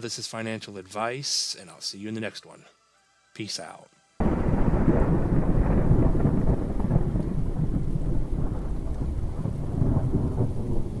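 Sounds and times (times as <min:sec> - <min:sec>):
rain: 0:04.2 - 0:11.0
thunder rumbling: 0:04.2 - 0:11.0.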